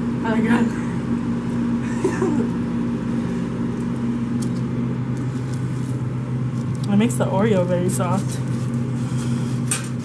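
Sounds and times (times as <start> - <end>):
kitchen equipment hum: 0.0 - 10.0.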